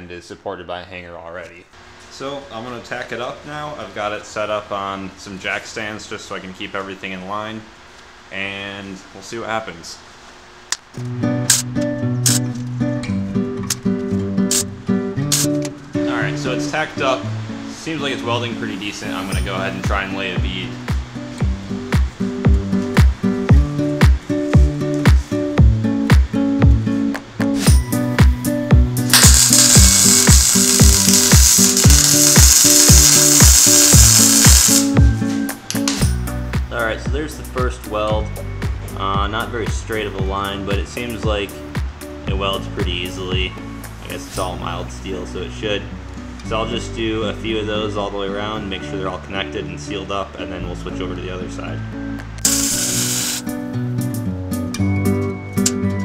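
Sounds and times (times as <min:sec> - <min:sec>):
music with a steady beat: 0:19.9 - 0:43.9
sharp percussive hits: 0:29.1 - 0:35.0
welding arc crackling: 0:29.1 - 0:35.0, 0:52.4 - 0:53.5
held pitched music notes: 0:29.1 - 0:35.2.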